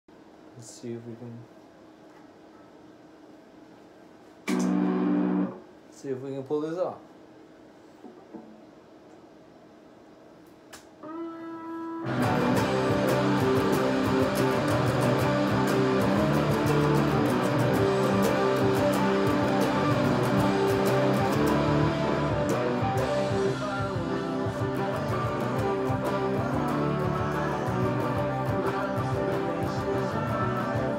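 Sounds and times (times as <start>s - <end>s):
electric guitar note ringing: 4.5s - 5.6s, 11.0s - 30.9s
electric guitar riff: 4.5s - 5.6s, 11.0s - 30.9s.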